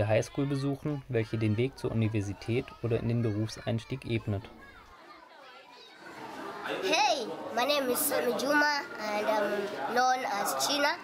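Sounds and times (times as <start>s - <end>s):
young man speaking: 0.0s - 4.6s
children chattering at play: 0.0s - 11.0s.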